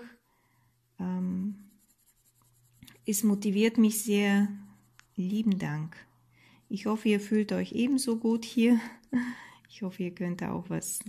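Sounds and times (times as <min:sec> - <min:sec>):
pencil strokes on paper: 0:00.7 - 0:09.1.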